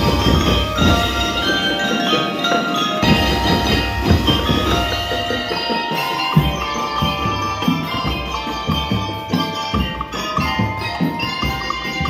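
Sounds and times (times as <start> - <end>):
bell lyres ringing a melody: 0.0 - 12.0.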